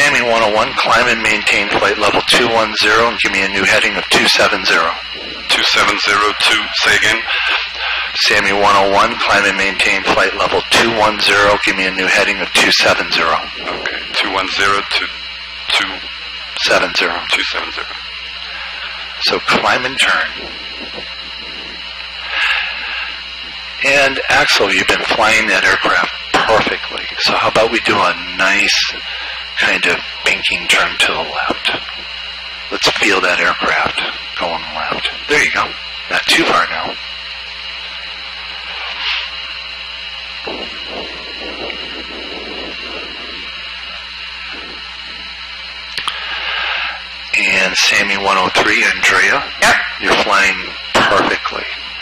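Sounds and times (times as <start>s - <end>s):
intercom line hiss and hum: 0.0s - 52.0s.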